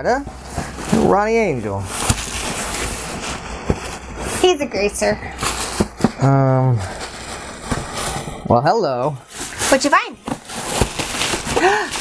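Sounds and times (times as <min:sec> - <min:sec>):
paper and cardboard rustling: 0:00.0 - 0:12.0.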